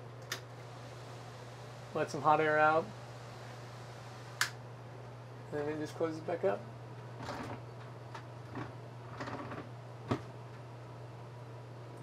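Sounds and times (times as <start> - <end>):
fan humming: 0.0 - 12.0
fan switch click: 4.4 - 4.6.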